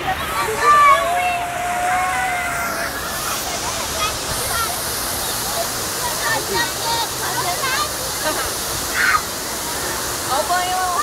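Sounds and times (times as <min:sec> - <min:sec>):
fountain water jets splashing: 0:00.0 - 0:11.0.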